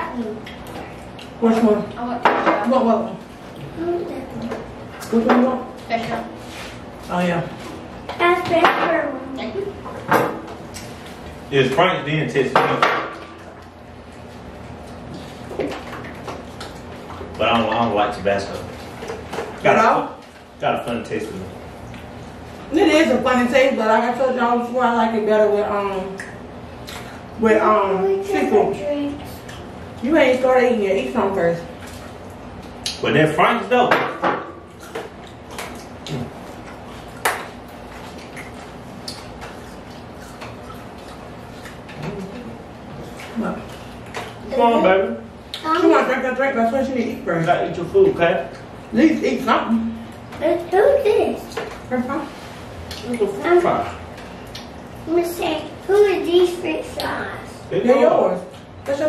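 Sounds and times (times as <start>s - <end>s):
taps and clicks of eating: 13.6s - 17.9s, 31.8s - 33.0s, 33.9s - 42.3s, 54.1s - 54.8s.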